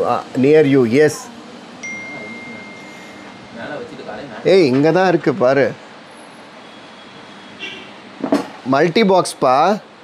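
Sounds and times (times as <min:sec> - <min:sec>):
steady background noise: 0:00.0 - 0:10.0
faint high-pitched sound: 0:01.8 - 0:03.8.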